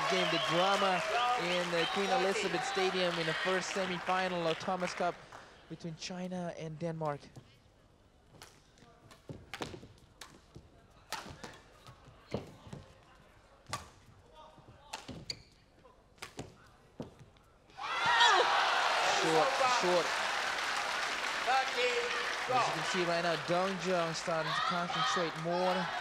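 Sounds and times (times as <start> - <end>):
crowd cheering and shouting: 0.0 - 4.1, 17.8 - 26.0.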